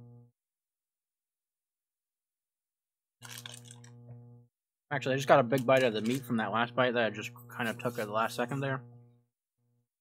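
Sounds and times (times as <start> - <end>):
man chewing crunchy food: 3.2 - 4.0
low electrical hum: 3.2 - 9.2.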